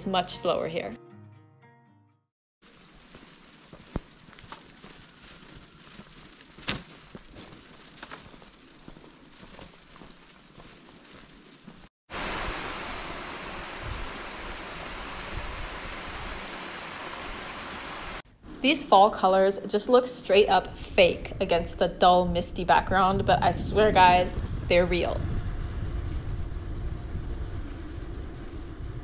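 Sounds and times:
wind blowing over microphone: 12.2 - 18.2, 20.5 - 29.0.

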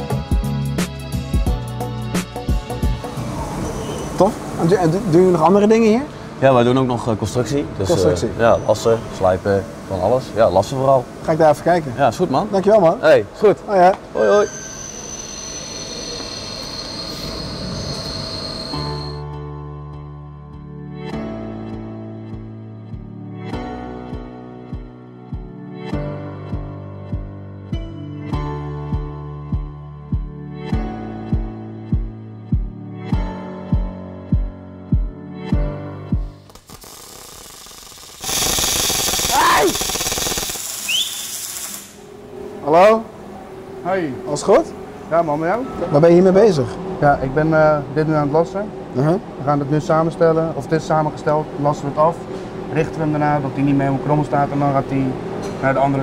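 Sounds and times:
high-pitched machine whine: 14.2 - 19.3, 36.5 - 55.5
electric welding arc crackling: 36.4 - 42.2
machinery hiss: 36.5 - 42.2.

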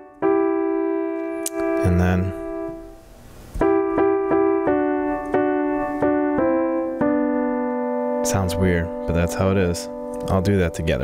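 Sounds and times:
slow piano notes: 0.0 - 11.0.

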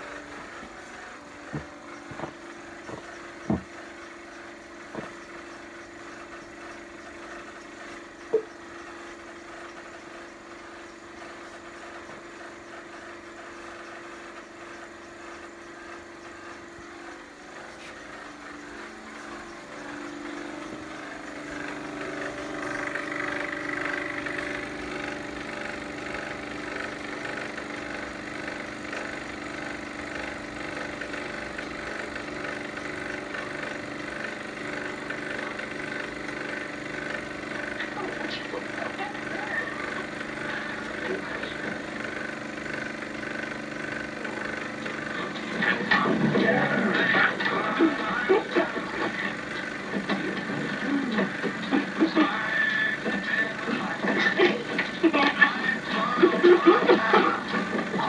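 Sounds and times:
mechanical engine-like hum: 0.0 - 58.0.

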